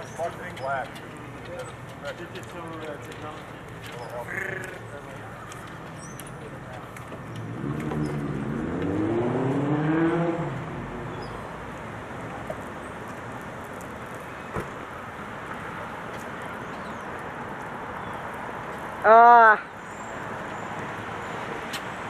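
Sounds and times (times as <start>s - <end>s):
vehicle engine accelerating: 6.4s - 12.4s.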